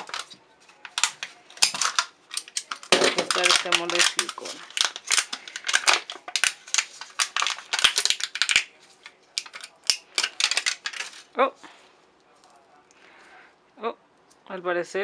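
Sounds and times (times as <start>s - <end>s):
plastic cup crackling: 0.0s - 11.4s.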